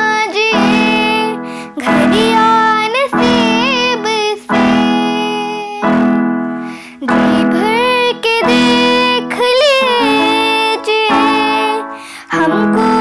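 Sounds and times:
electronic keyboard chords: 0.0 - 13.0
girl singing: 0.0 - 13.0.

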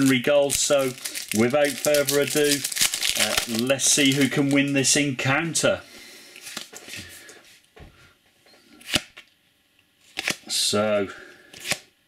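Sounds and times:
cards rustling: 0.0 - 4.9.

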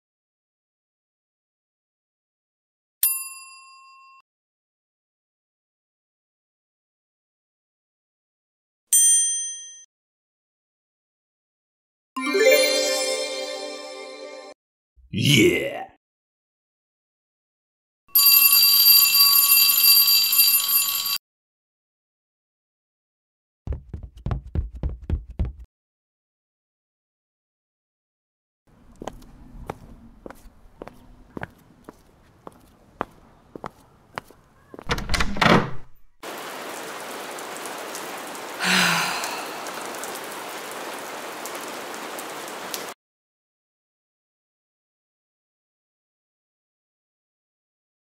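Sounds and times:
electric bell ringing: 18.1 - 21.2
footstep: 23.7 - 25.6, 28.8 - 35.0
glass door clattering open: 34.9 - 36.0
steady rain: 36.2 - 43.0.

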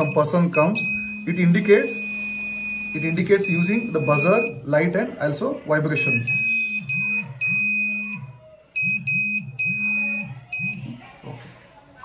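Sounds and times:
piezo buzzer beeping: 0.0 - 4.6, 6.0 - 10.8.

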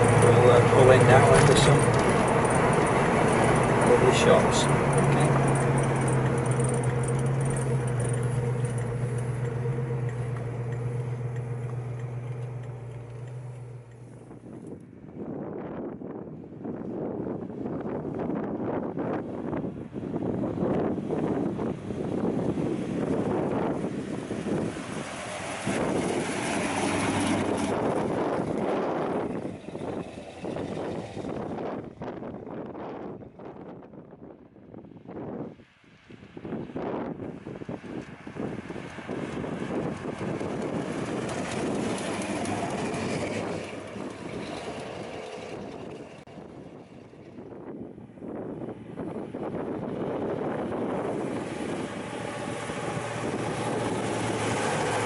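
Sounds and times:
car driving by: 0.0 - 14.8, 20.3 - 32.6, 36.8 - 47.6, 48.7 - 55.0
car engine running: 0.0 - 14.8, 20.5 - 32.7, 37.2 - 47.6, 49.0 - 55.0
wind buffeting microphone: 0.0 - 55.0.

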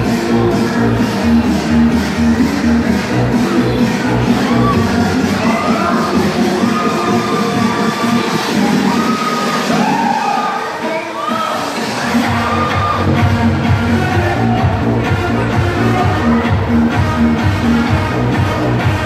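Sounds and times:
electronic dance music: 0.0 - 19.0.

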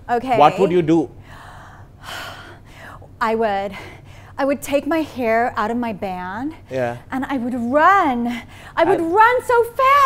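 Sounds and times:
woman breathing in: 1.2 - 3.1.

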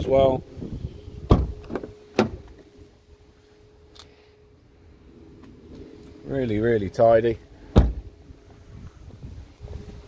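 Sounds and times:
car door latch clunk: 1.2 - 2.7, 7.7 - 8.1.

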